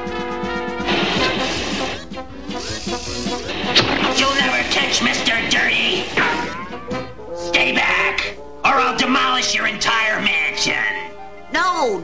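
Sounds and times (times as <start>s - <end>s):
cartoon background music: 0.0s - 12.0s
sharp crack: 0.8s - 2.1s, 3.4s - 6.6s.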